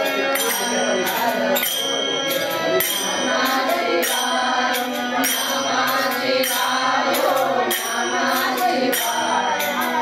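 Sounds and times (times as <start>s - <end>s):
group singing devotional song: 0.0s - 10.0s
percussion beat: 0.0s - 10.0s.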